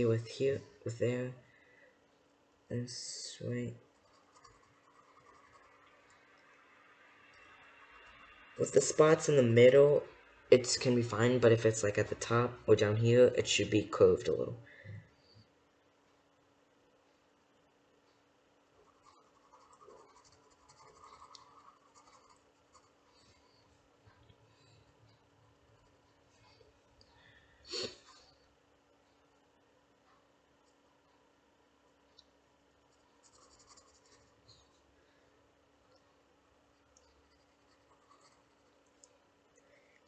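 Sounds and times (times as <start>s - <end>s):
pencil scratching on paper: 3.9s - 5.9s, 18.8s - 23.6s, 32.9s - 34.5s, 37.1s - 38.7s.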